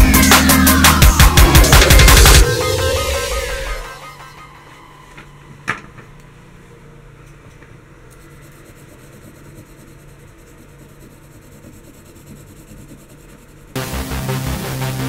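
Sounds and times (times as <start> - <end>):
pencil scratching on paper: 8.1 - 13.8.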